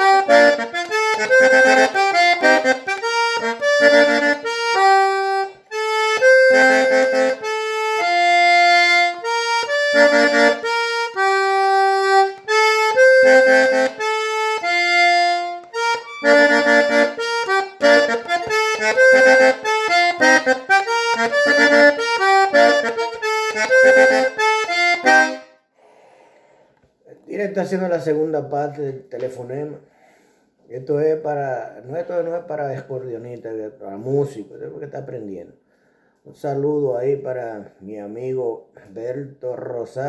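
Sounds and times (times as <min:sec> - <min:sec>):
button accordion melody: 0:00.0 - 0:25.7.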